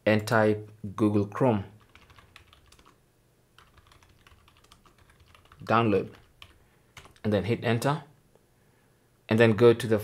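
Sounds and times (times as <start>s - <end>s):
keyboard keys typing: 1.8s - 3.0s, 3.6s - 7.2s.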